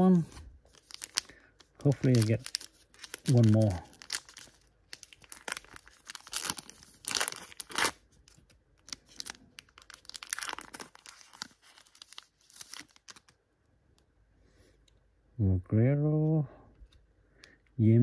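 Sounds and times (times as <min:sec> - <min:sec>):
foil wrapper ripping and crinkling: 0:00.7 - 0:13.4.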